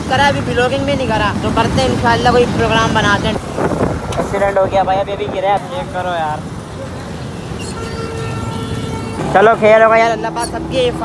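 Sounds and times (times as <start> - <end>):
motorcycle engines rumbling: 0.0 - 11.0
road traffic: 0.0 - 11.0.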